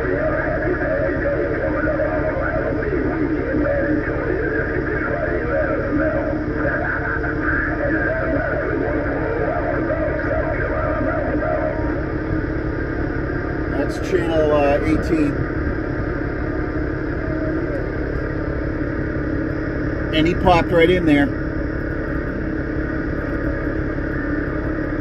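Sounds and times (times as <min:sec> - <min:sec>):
low steady rumble: 0:00.0 - 0:25.0
radio transmission with music and voice: 0:00.0 - 0:25.0.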